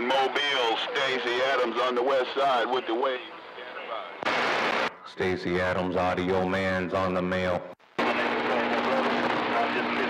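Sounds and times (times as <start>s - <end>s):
radio static hiss: 0.0s - 5.6s, 7.7s - 10.0s.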